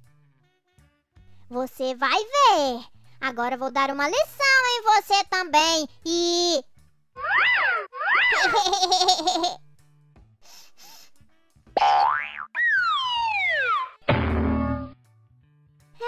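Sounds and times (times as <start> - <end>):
springy cartoon boings: 7.2 - 8.6, 11.8 - 15.0
falling slide whistle: 12.6 - 14.0
rising whistle: 12.7 - 14.0
short noisy crash: 14.1 - 15.0.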